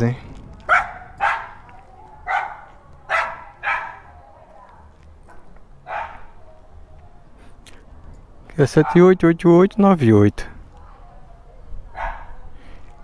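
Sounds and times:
dogs barking: 0:00.7 - 0:04.5, 0:05.3 - 0:06.8, 0:08.7 - 0:09.2, 0:11.9 - 0:12.4.

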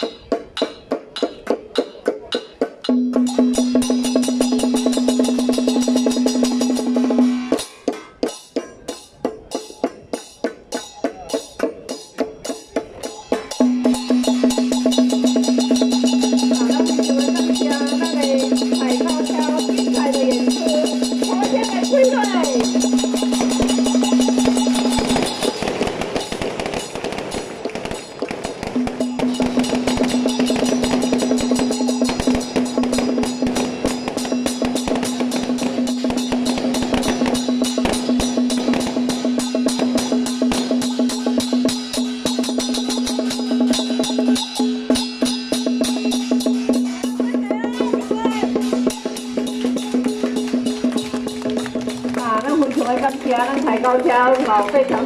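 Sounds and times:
drums gongs and cymbals beating: 0:00.0 - 0:55.0.

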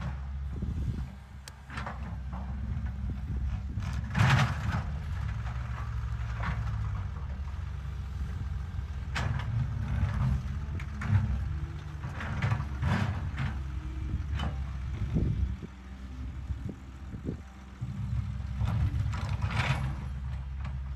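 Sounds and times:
excavator diesel engine running: 0:00.0 - 0:20.9
rock and soil scraping: 0:16.3 - 0:20.9.

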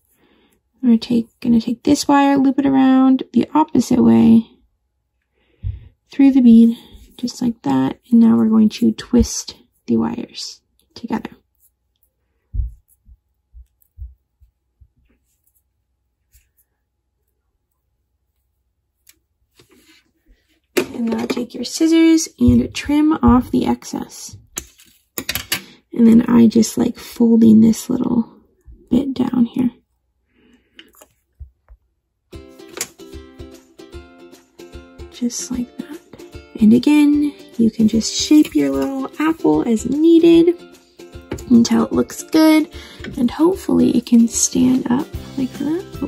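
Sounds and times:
soft dull thuds: 0:12.5 - 0:15.0.

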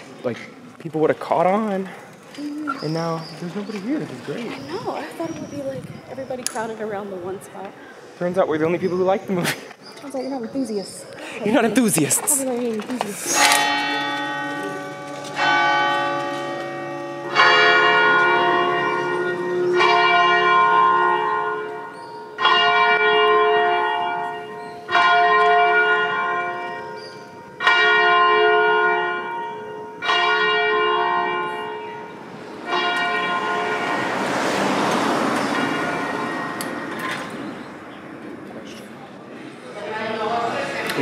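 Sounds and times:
church bell tolling: 0:13.4 - 0:37.9.

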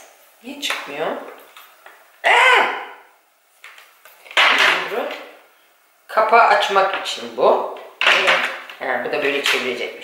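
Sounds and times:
woman exclaiming: 0:02.2 - 0:03.1.

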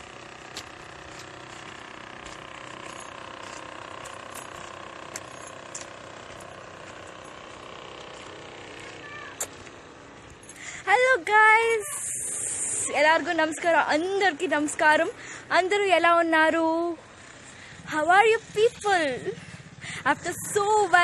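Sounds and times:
outdoor background noise: 0:00.0 - 0:21.0.

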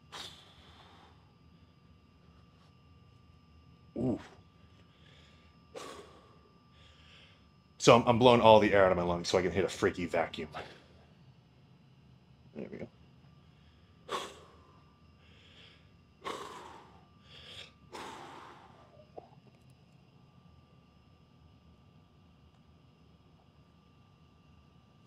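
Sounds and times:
man breathing heavily: 0:00.0 - 0:01.4, 0:04.0 - 0:07.5, 0:13.4 - 0:19.1
faint steady hum: 0:00.0 - 0:25.0.

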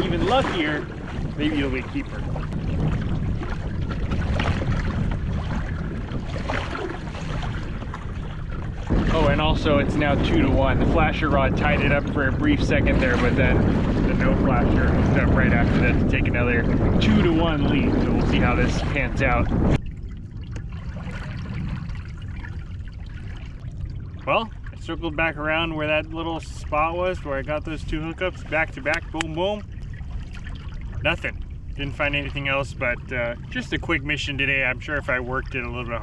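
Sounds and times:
water splashing against kayak hull: 0:00.0 - 0:36.0
wind buffeting microphone: 0:00.0 - 0:36.0.

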